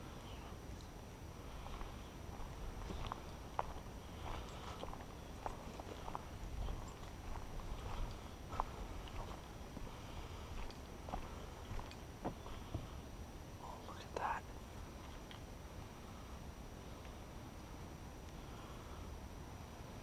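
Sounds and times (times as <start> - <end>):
low wind rumble: 0.0 - 20.0.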